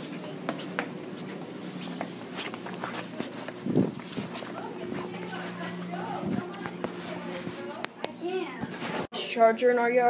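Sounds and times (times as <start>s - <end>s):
rubbing on phone: 1.7s - 7.8s, 8.5s - 9.1s.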